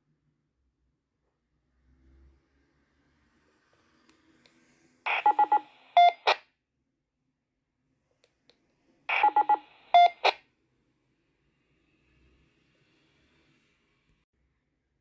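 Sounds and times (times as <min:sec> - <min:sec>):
radio beeps: 0:05.1 - 0:06.4, 0:09.1 - 0:10.4.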